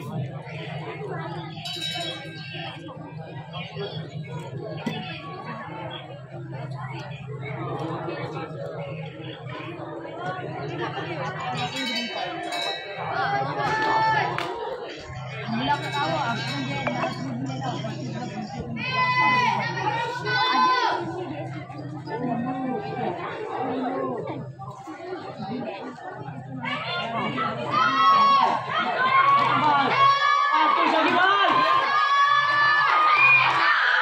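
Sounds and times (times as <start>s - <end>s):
overlapping chatter: 0.0s - 34.0s.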